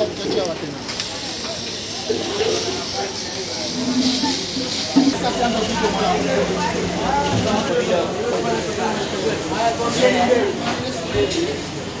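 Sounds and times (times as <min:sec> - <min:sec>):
lobster sizzling on a grill pan: 0:00.0 - 0:06.0
voices talking: 0:00.0 - 0:11.7.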